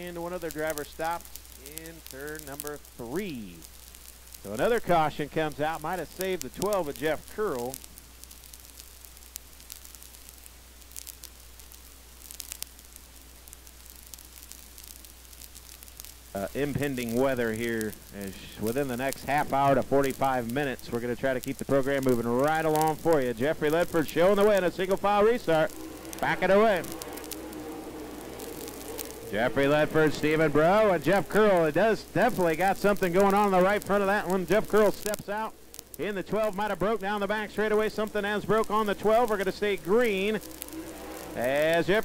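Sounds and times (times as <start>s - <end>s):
faint steady hiss: 0.0s - 42.0s
low electrical hum: 0.0s - 42.0s
short crackling clicks: 0.0s - 42.0s
distant race track noise: 22.3s - 36.8s, 37.5s - 42.0s.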